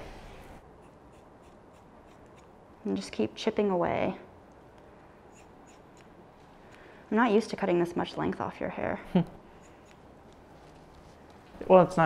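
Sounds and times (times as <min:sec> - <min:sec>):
scissors snipping hair: 0:00.9 - 0:02.6, 0:05.3 - 0:06.8, 0:09.6 - 0:10.4.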